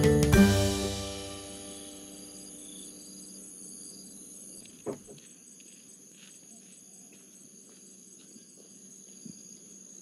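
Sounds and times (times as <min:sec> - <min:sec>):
background music: 0:00.0 - 0:02.8
insects chirping: 0:00.0 - 0:10.0.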